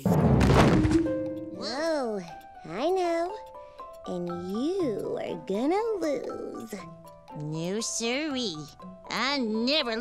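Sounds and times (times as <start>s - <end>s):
sudden loud thump: 0.0s - 1.3s.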